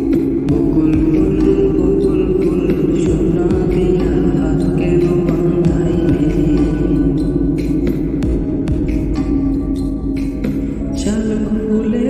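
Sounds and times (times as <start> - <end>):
person singing: 0.0 - 12.0
slowed reverb-heavy lofi music: 0.0 - 12.0.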